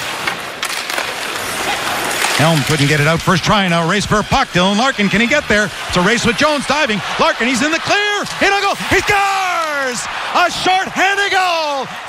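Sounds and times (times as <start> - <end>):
skates scraping on ice: 0.0 - 3.9
arena crowd hum: 1.5 - 12.0.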